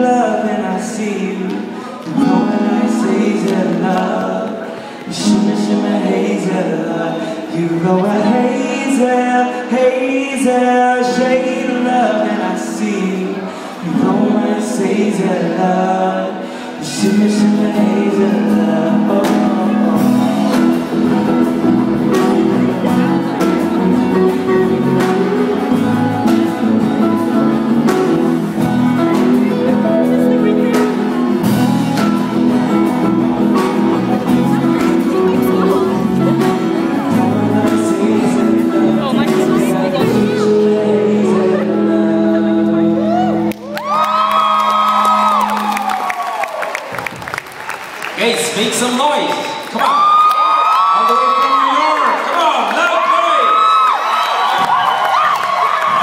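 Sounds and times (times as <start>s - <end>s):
live pop-rock band playing: 0.0s - 49.1s
audience screaming: 43.0s - 47.4s, 49.6s - 56.0s
audience clapping: 43.4s - 56.0s.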